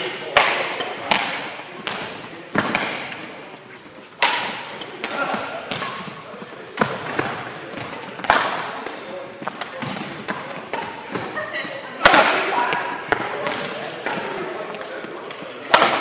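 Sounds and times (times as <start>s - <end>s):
rackets striking shuttlecock: 0.3s - 3.4s, 4.1s - 11.4s, 12.0s - 16.0s.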